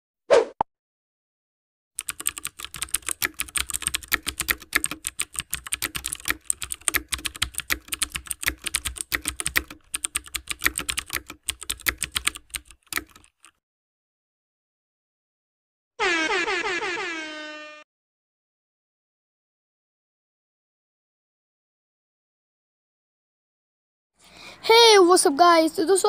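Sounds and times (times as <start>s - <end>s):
rapid keyboard typing: 2.0s - 13.6s.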